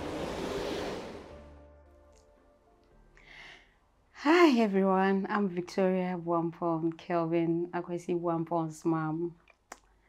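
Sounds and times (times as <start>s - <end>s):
rushing outdoor noise: 0.0s - 1.4s
faint soft background music: 0.0s - 9.7s.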